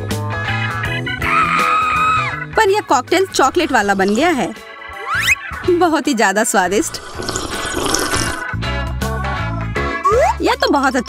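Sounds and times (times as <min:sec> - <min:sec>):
background music: 0:00.0 - 0:11.0
person gulping a drink: 0:06.8 - 0:08.5.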